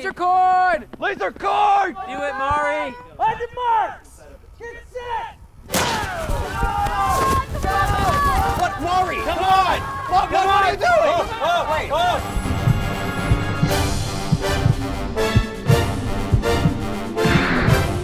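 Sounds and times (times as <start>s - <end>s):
people yelling and cheering: 0.2s - 4.0s, 5.0s - 12.5s
background music with steady beat: 11.3s - 18.0s.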